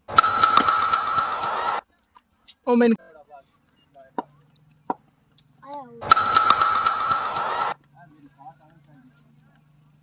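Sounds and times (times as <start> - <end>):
faint distant voices: 7.7 - 10.0.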